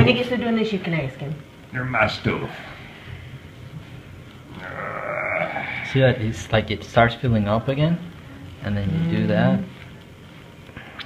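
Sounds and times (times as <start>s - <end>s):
person humming: 4.5s - 5.8s, 8.8s - 9.7s.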